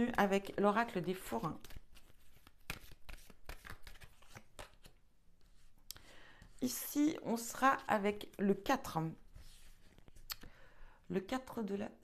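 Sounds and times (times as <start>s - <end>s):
cards shuffling: 1.2s - 5.7s.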